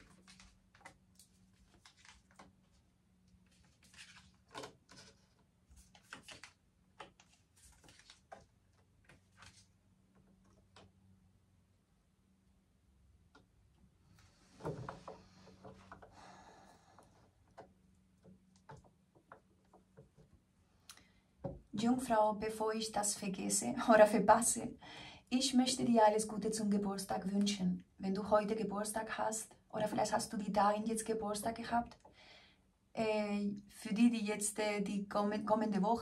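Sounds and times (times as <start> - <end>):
card handling rustle: 0.0 - 2.8, 3.4 - 9.8
faint steady hum: 0.0 - 36.0.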